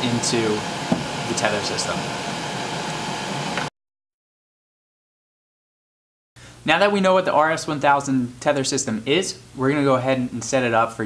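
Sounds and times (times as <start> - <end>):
fan whooshing: 0.0 - 3.7.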